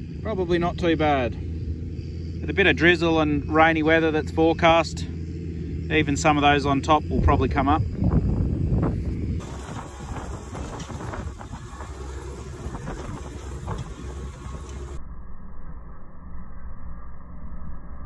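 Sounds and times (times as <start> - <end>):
seeder rumbling through wet soil: 2.4 - 15.0
tines rattling and knocking: 9.4 - 15.0.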